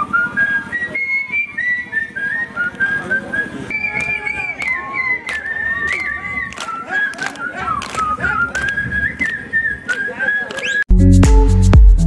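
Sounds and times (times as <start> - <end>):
man whistling: 0.0 - 10.9.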